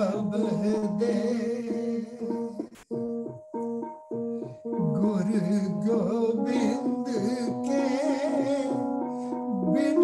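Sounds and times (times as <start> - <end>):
person singing: 0.0 - 3.0, 4.8 - 10.0
harmonium melody: 0.0 - 10.0.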